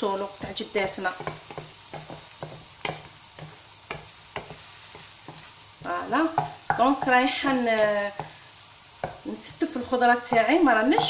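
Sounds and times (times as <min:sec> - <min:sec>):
onions sizzling in fat: 0:00.0 - 0:11.0
spoon tapping and scraping clay: 0:00.4 - 0:05.5, 0:06.3 - 0:07.2, 0:10.2 - 0:11.0.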